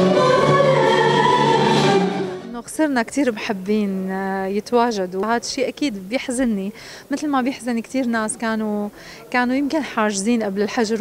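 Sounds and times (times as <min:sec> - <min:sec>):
woman singing with orchestra: 0:00.0 - 0:02.5
woman speaking: 0:02.5 - 0:11.0.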